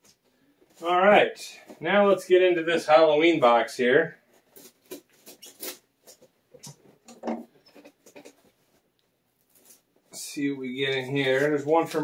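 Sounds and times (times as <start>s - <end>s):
knife cutting packing tape: 4.5s - 6.2s.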